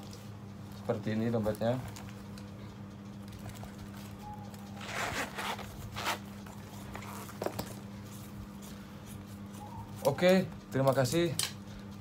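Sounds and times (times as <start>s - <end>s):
steady low hum: 0.0s - 12.0s
metal zipper being pulled: 4.8s - 7.4s.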